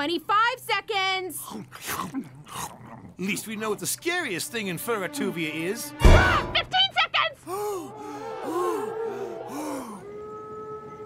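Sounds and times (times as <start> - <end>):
cartoon groans and gasps: 7.4 - 10.1.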